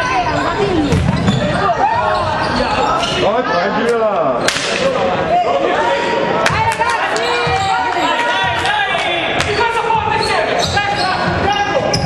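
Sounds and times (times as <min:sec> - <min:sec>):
sneakers squeaking on wooden court: 0:00.1 - 0:03.3, 0:09.4 - 0:12.0.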